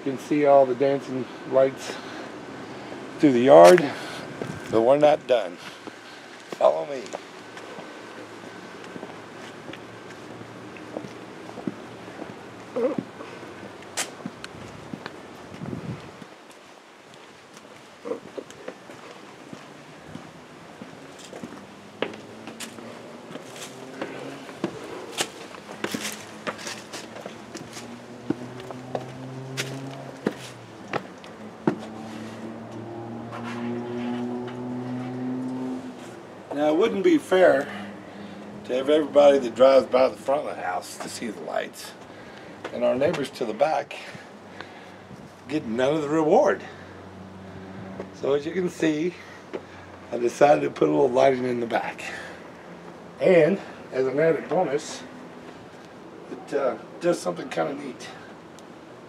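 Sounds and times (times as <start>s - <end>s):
footsteps walking: 5.6s - 36.6s
knocks and scuffs: 17.6s - 35.2s.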